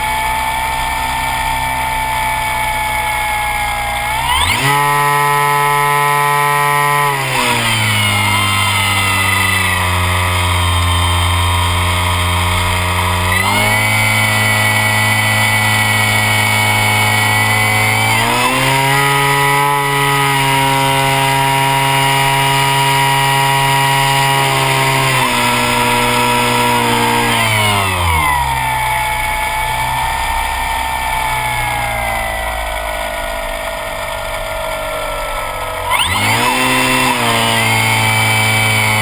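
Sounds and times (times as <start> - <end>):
model plane motor and propeller: 0.0 - 39.0.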